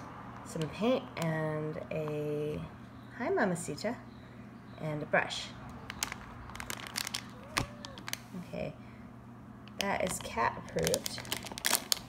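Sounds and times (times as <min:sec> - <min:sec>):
plastic packet crinkling: 0:05.8 - 0:08.3, 0:09.8 - 0:12.0.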